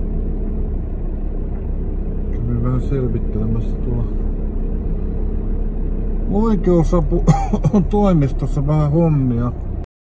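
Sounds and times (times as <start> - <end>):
car interior engine and road hum: 0.0 - 9.9.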